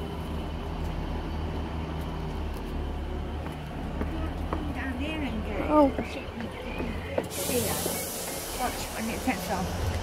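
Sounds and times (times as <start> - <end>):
train engine drone: 0.0 - 10.0
air brake hiss: 7.3 - 9.3.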